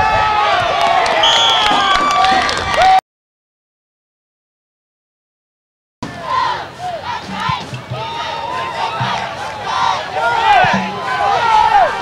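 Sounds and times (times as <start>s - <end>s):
crowd yelling and shouting: 0.0s - 3.0s, 6.0s - 12.0s.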